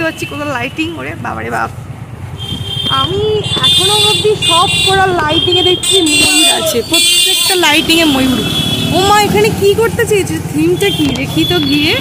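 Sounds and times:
people talking: 0.0s - 1.8s, 2.9s - 12.0s
motorcycle engine running: 1.6s - 12.0s.

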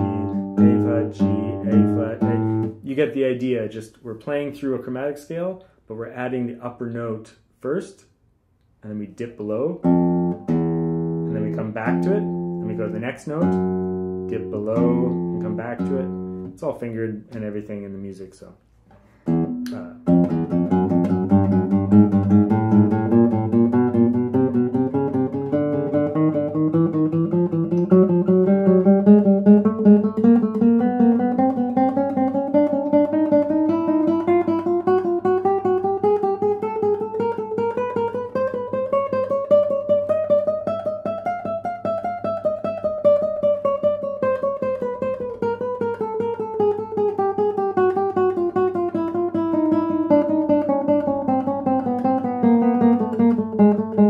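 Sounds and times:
classical guitar playing scale: 0.0s - 8.0s, 8.9s - 54.0s.

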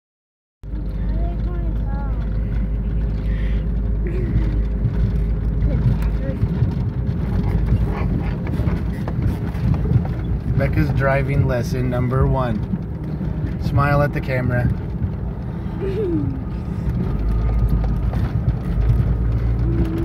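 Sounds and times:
car engine and tyre rumble: 0.6s - 20.0s.

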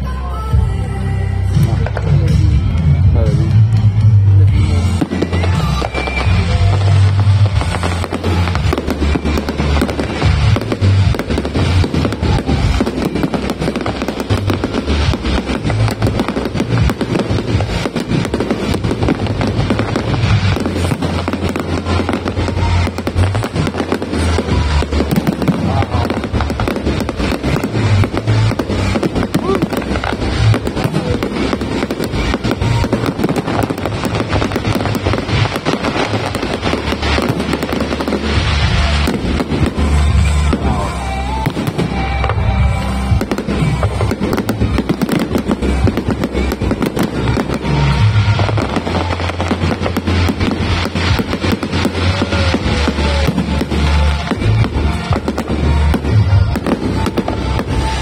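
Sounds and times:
fireworks crackle: 0.0s - 58.0s
fireworks deep booms: 1.6s - 58.0s.

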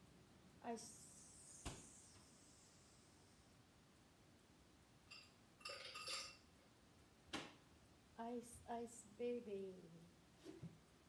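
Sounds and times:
kitchenware clinking: 5.1s - 6.5s.

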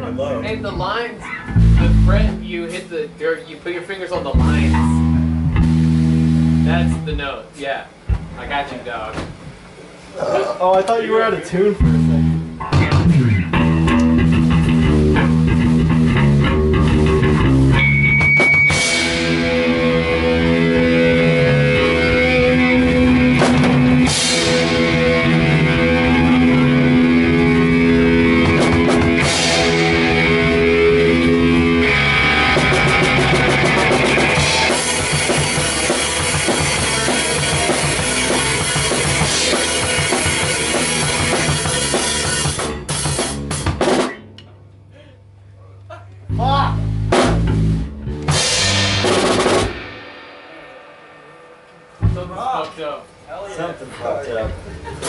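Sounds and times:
electric guitar and bass chords: 0.0s - 3.1s, 4.2s - 7.4s, 11.8s - 53.3s
drum kit with crash cymbals: 11.8s - 44.3s, 46.9s - 53.2s.

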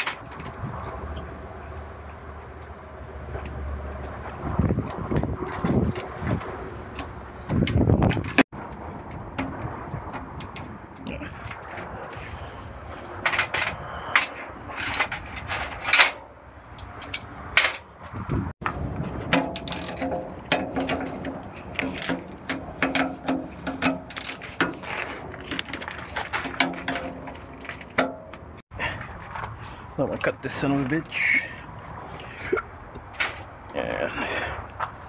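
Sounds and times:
metallic clicks and clanks: 4.2s - 8.4s, 13.3s - 17.9s, 19.2s - 28.6s.

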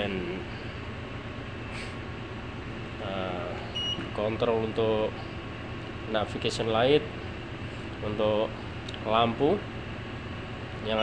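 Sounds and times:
low machinery hum: 0.0s - 11.0s.

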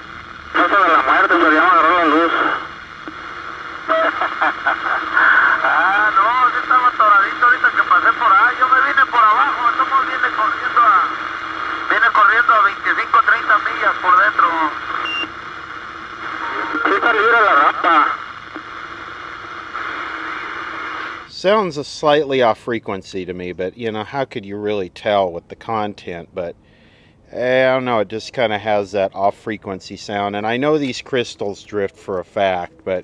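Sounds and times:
steady radio hiss: 0.0s - 33.0s
tinny radio voices: 0.5s - 15.1s, 16.1s - 18.8s.

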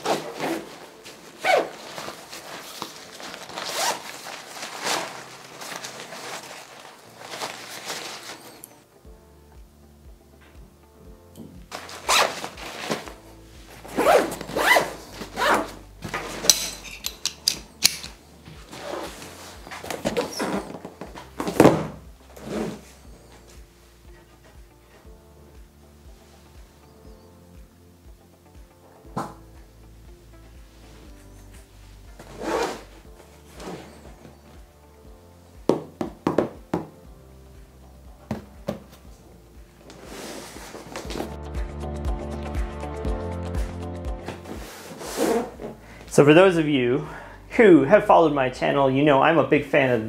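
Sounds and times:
backpack zipper pulled: 0.0s - 8.8s, 11.7s - 13.1s, 13.9s - 16.5s, 18.7s - 20.9s, 32.2s - 34.1s, 44.5s - 45.8s
background music: 0.0s - 50.0s.

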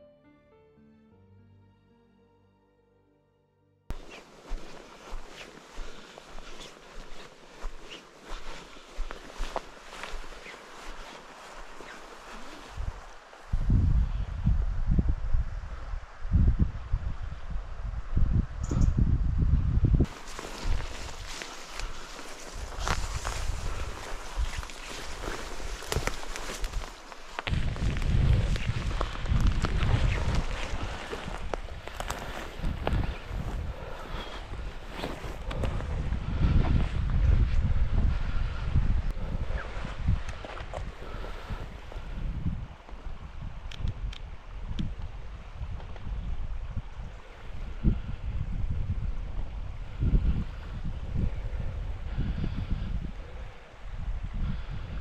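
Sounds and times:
footsteps: 3.9s - 13.2s, 20.0s - 37.0s
leaves and branches rustling: 3.9s - 14.7s, 20.0s - 51.6s
wind buffeting microphone: 3.9s - 55.0s.

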